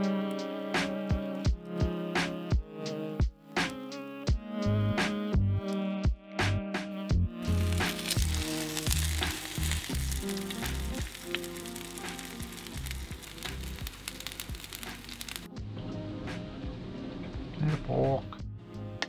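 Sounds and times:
background music: 0.0 - 19.0
fish cakes sizzling in oil: 7.5 - 15.5.

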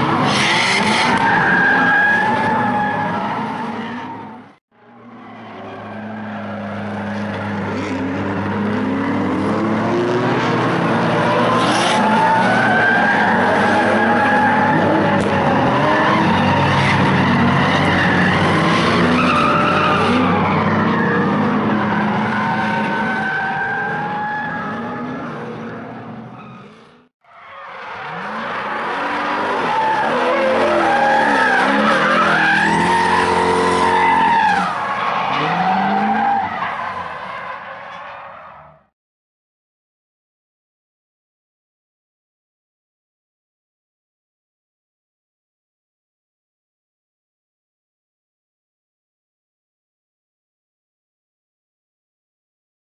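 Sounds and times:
car engines revving: 0.0 - 27.1, 27.7 - 38.9
tyres skidding and squealing: 0.0 - 39.0.

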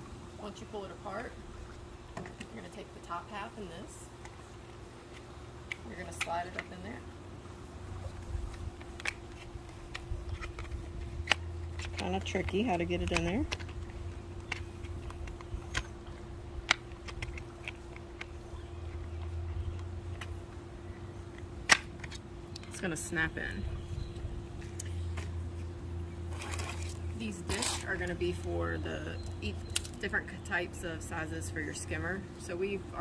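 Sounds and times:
steady low hum: 0.0 - 33.0
plastic parts clicking together: 8.5 - 20.3, 29.2 - 30.0
plastic discs rustling clatter: 26.3 - 28.1.

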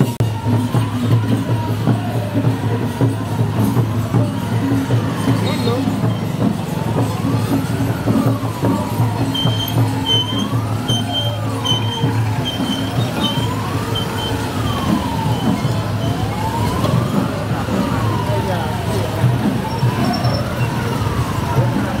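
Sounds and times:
vehicle engines running: 0.0 - 22.0
vehicle siren wailing: 0.0 - 22.0.

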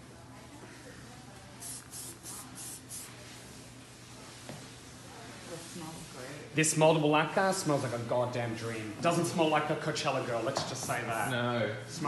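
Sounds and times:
aerosol hairspray hissing bursts: 1.6 - 3.1.

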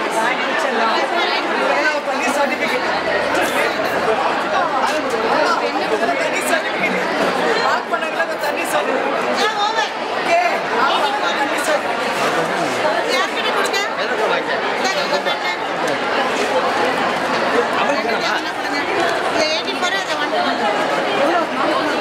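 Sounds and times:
group chatter: 0.0 - 22.0.

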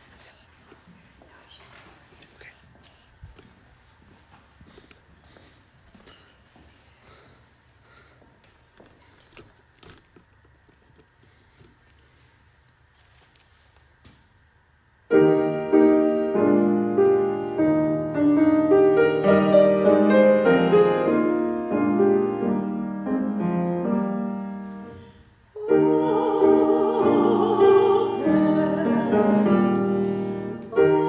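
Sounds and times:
piano chords: 15.1 - 31.0.

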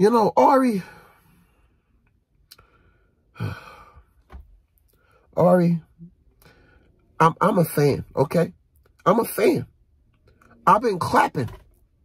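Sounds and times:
man sighing: 3.3 - 4.1.

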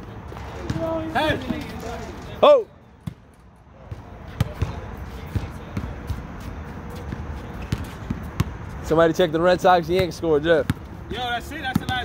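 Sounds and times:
basketballs bouncing on hard court: 0.4 - 1.8, 3.8 - 6.4, 7.0 - 8.7, 9.8 - 12.0.

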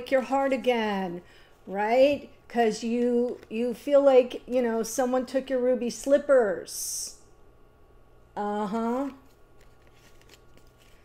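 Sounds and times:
cards sliding and flicking: 9.6 - 11.0.

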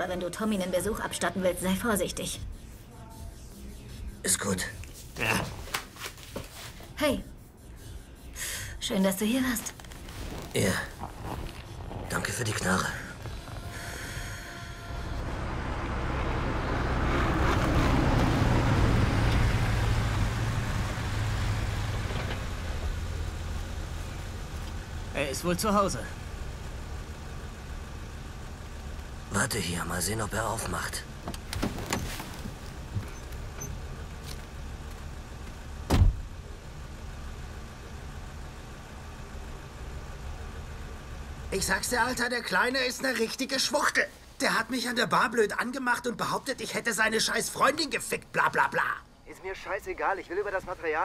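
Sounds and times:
low engine drone: 9.9 - 42.2
car driving past: 13.7 - 25.2
car door slamming shut: 35.8 - 36.3.

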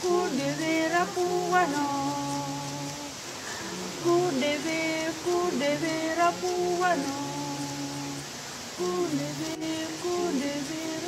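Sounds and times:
waterfall rushing: 0.0 - 11.0
woman singing lullaby notes: 0.0 - 11.0.

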